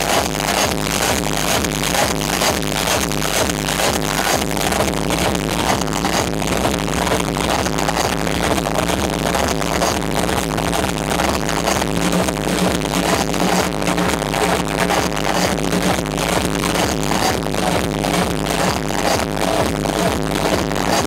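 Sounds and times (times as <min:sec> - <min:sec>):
loud techno music: 0:00.0 - 0:21.0.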